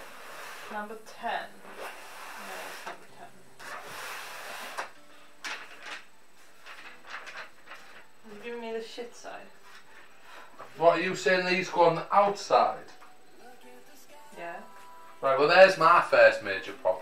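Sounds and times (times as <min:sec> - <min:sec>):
rustling and rubbing of packaging: 0:03.6 - 0:05.0, 0:05.6 - 0:08.5.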